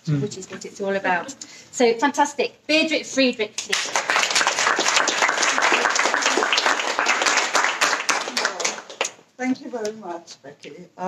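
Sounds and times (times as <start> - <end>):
audience applauding: 3.7 - 9.2.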